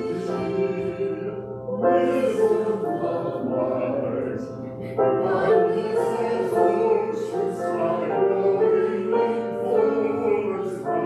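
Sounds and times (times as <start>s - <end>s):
voices singing a hymn: 0.0s - 11.0s.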